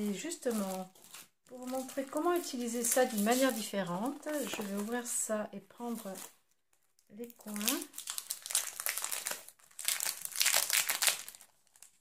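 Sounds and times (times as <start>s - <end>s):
plastic packaging crinkling: 0.1s - 5.1s, 5.9s - 12.0s.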